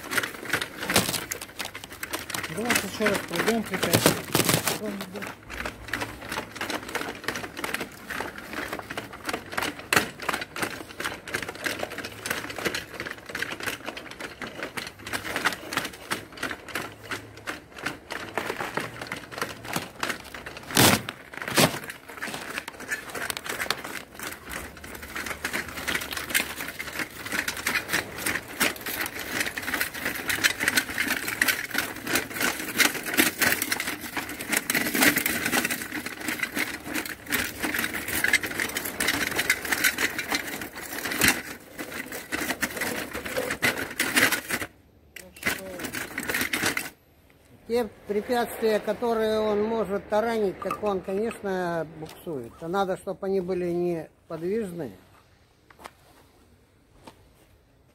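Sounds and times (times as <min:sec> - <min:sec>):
track links clattering: 0:00.0 - 0:54.9.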